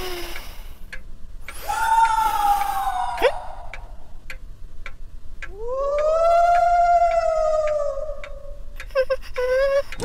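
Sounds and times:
clock ticking: 0:00.3 - 0:01.1, 0:03.7 - 0:05.6, 0:08.2 - 0:10.0.

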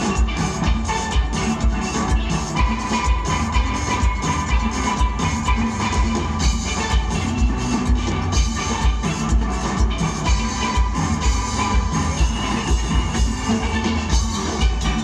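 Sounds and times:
driving bass beat: 0:00.0 - 0:15.0
steelpans playing melody: 0:00.0 - 0:15.0.

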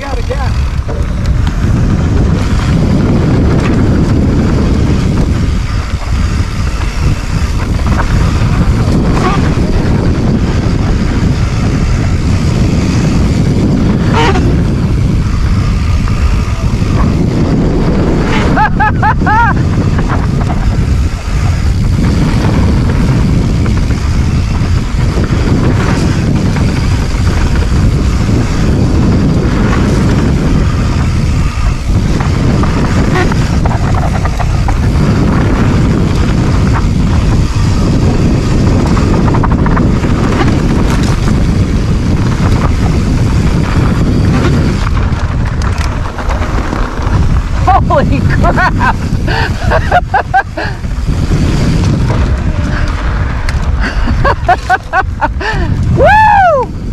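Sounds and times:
bike tyres rolling on dirt: 0:00.0 - 0:56.9
wind buffeting microphone: 0:00.0 - 0:56.9.

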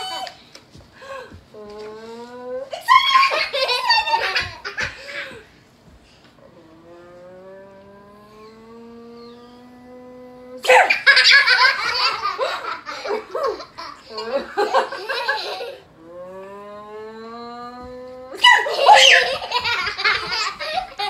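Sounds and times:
children squealing with laughter: 0:02.7 - 0:05.4, 0:18.4 - 0:21.0
woman's drawn-out rising vocal note: 0:06.4 - 0:10.6, 0:16.0 - 0:19.2.

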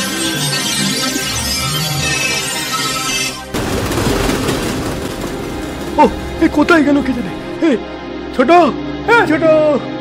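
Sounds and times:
train passing on tracks: 0:03.6 - 0:07.6.

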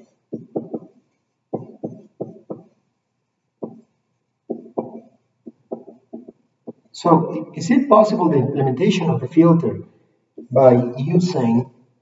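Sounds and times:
marker writing on whiteboard: 0:00.0 - 0:02.8, 0:03.4 - 0:06.9.

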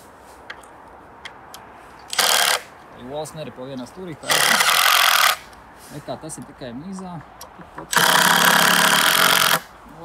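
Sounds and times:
cordless drill driving screw: 0:02.1 - 0:02.6, 0:04.3 - 0:05.4, 0:07.9 - 0:09.7.

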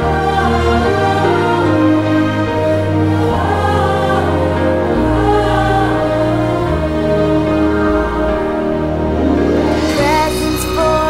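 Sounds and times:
choir holding wordless notes: 0:00.0 - 0:11.0
orchestral music: 0:00.0 - 0:11.0
sustained bass: 0:00.0 - 0:11.0.

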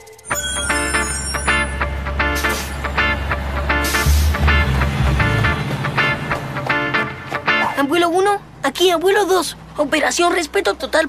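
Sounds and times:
background music: 0:00.0 - 0:08.2
bus engine rumble: 0:00.4 - 0:11.0
short burst of hiss: 0:02.4 - 0:02.9.

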